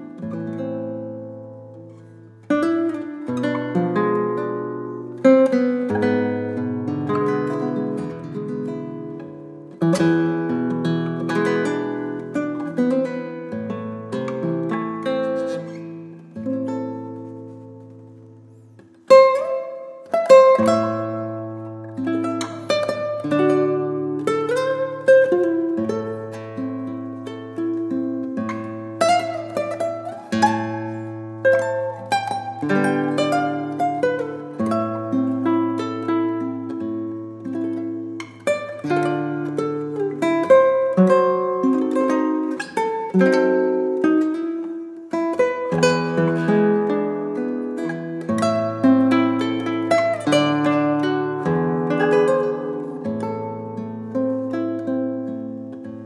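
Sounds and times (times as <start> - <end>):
fingerstyle classical guitar: 0.0 - 56.0.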